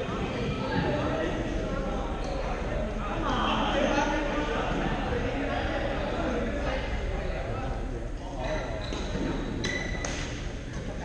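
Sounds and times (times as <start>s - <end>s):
indistinct voices of many people: 0.0s - 11.0s.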